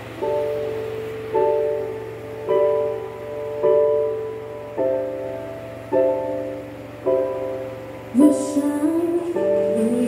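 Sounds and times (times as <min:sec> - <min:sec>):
slow piano chords: 0:00.0 - 0:10.0
wordless singing: 0:08.1 - 0:10.0.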